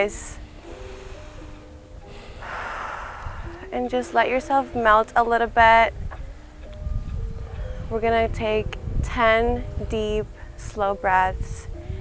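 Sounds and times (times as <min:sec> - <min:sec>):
soft background music: 0:00.0 - 0:12.0
person breathing deeply: 0:00.4 - 0:03.8.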